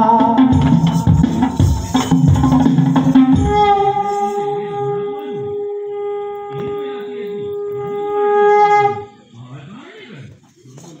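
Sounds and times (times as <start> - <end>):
blown horn note: 0.0 - 9.2
faint background murmur: 1.4 - 11.0.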